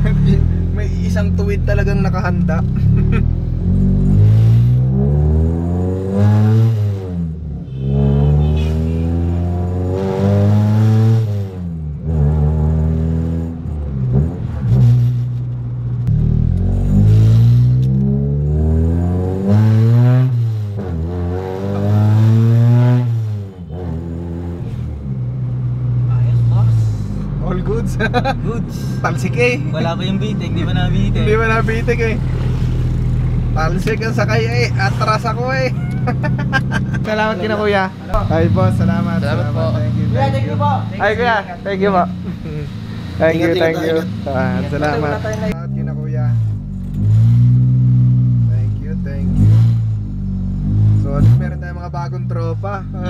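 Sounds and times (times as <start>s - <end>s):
car engine revving: 0.0s - 53.0s.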